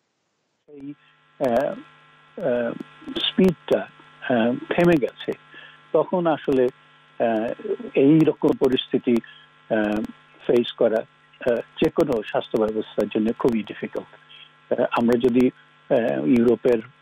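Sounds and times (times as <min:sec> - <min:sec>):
electrical hum: 0:00.7 - 0:17.0
man speaking over video link: 0:00.8 - 0:01.8, 0:02.4 - 0:14.1, 0:14.7 - 0:16.9.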